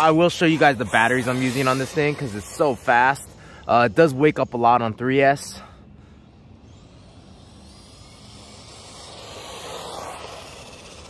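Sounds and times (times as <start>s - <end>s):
rc truck electric motor whine: 0.0s - 4.6s, 6.1s - 11.0s.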